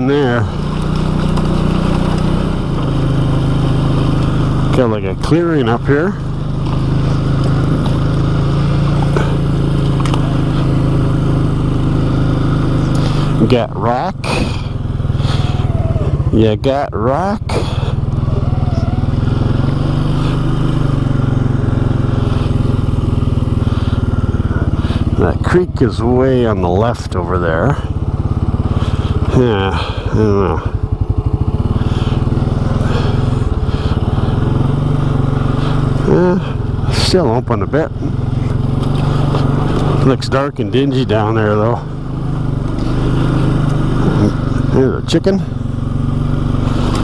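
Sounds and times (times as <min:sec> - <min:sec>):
atv engine running: 0:00.0 - 0:47.0.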